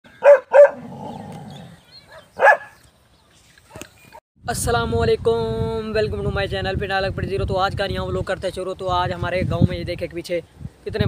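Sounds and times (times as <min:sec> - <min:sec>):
dog barking: 0:00.2 - 0:01.0, 0:02.1 - 0:02.8.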